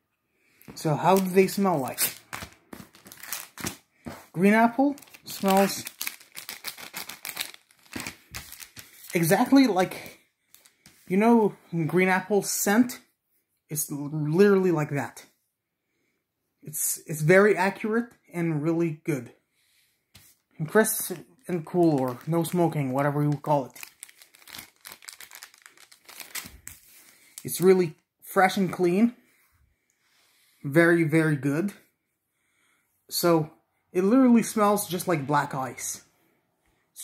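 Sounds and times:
foil packet crinkling: 1.1s - 3.8s, 4.8s - 10.8s, 21.6s - 27.7s.

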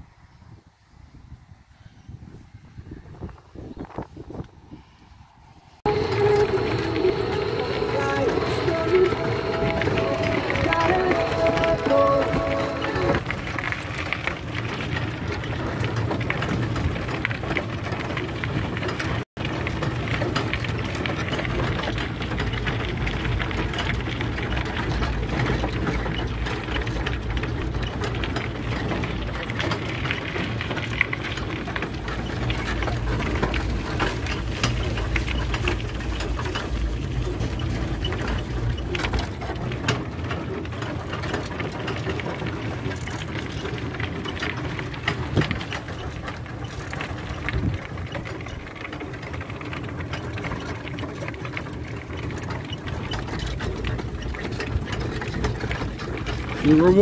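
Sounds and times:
small clicks and rattles: 5.8s - 57.0s.

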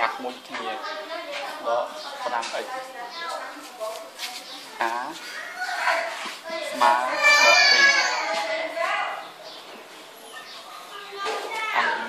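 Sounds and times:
faint background voices: 0.0s - 12.0s
young voice talking: 10.7s - 12.0s.

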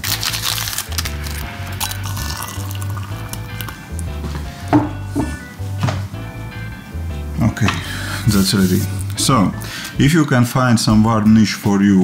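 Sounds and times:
background music with bass line: 0.0s - 11.5s.

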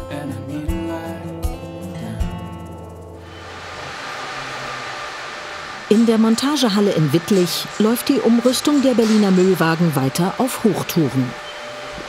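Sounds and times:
guitar music: 0.0s - 5.8s
steady workshop rushing noise: 2.7s - 12.0s.

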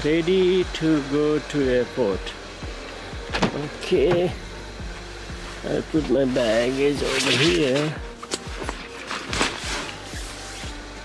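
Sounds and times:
music with punchy kick drum: 1.6s - 11.0s.

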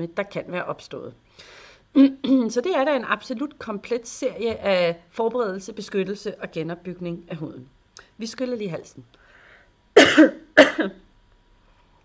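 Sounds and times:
person coughing: 10.0s - 11.0s.

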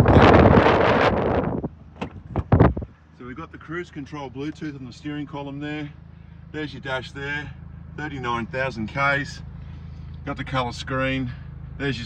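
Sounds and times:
wind buffeting microphone: 0.0s - 3.0s.

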